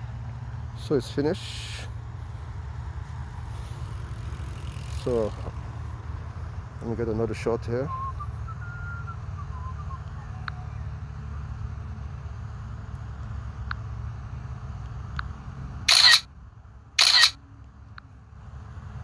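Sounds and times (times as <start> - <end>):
camera shutter sounds: 15.9 - 16.3, 17.0 - 17.4.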